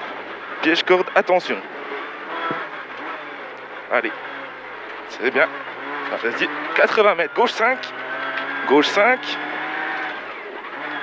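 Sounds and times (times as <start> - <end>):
car engine running: 0.0 - 11.0.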